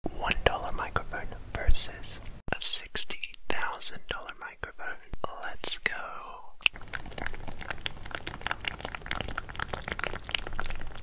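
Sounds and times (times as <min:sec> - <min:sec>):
breathy whispering: 0:00.1 - 0:06.6
low background hum: 0:00.1 - 0:11.0.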